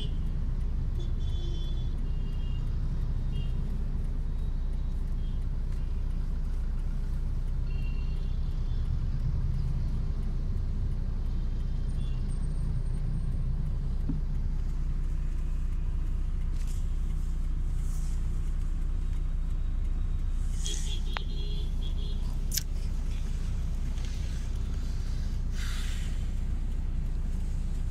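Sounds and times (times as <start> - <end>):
car engine: 0.0 - 27.9
road traffic rumble: 0.0 - 27.9.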